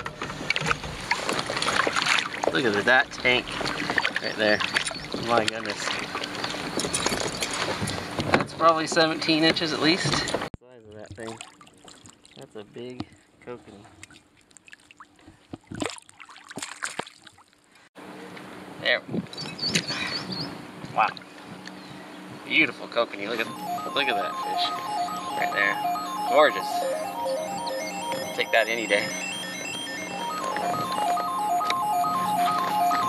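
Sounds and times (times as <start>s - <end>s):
water splashing: 0.0s - 7.8s, 11.0s - 12.5s, 13.8s - 17.6s.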